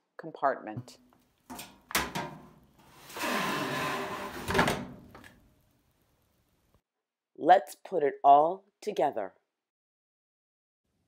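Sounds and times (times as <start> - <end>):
plastic screen scraping slide: 2.8 - 5.4.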